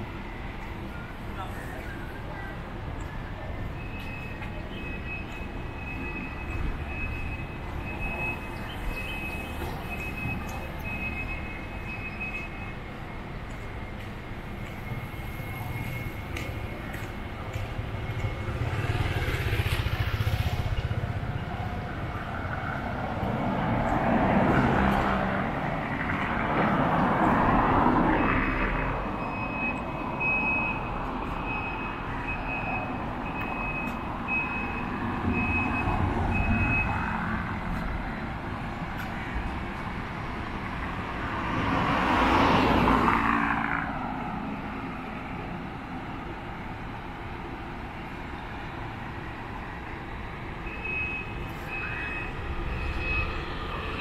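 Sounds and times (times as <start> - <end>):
vehicles passing: 0.0 - 54.0.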